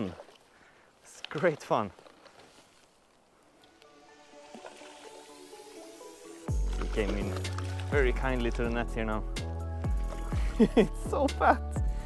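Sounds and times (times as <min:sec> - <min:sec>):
background music: 0:03.6 - 0:12.0.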